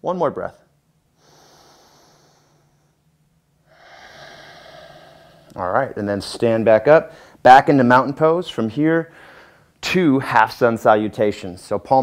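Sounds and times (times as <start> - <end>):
man breathing through the nose: 1.2 - 3.0, 3.6 - 5.6, 9.1 - 9.7.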